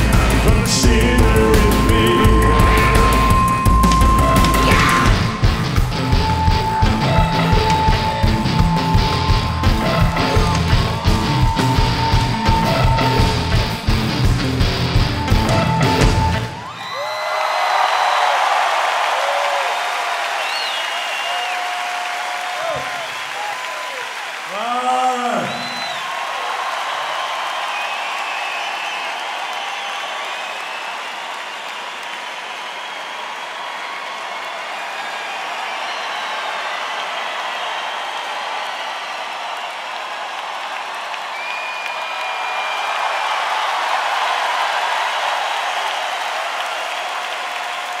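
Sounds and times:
crowd applauding and cheering: 0.0s - 48.0s.

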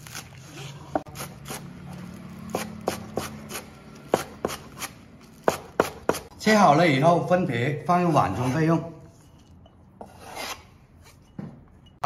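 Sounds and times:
knife chopping on cutting board: 2.4s - 6.3s.

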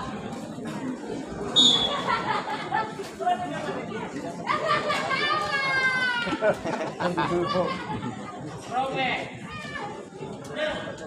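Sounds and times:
spectators chattering: 0.0s - 11.0s
referee's whistle blast: 1.6s - 1.9s.

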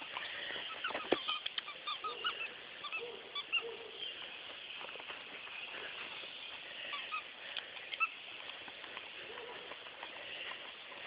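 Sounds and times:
squeaky chew toy squeaking: 0.7s - 3.6s.

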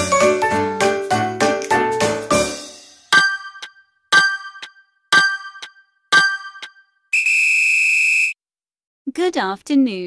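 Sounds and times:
long electronic beep: 7.2s - 8.4s.

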